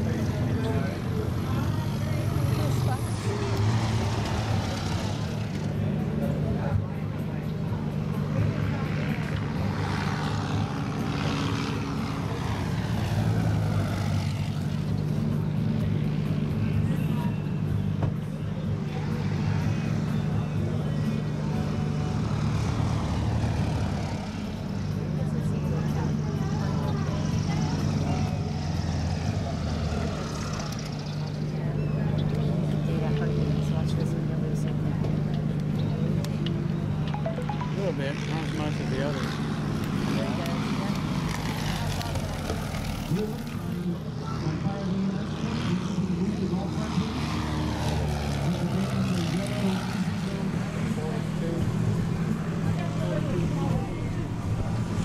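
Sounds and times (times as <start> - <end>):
propeller plane engine drone: 0.0 - 55.0.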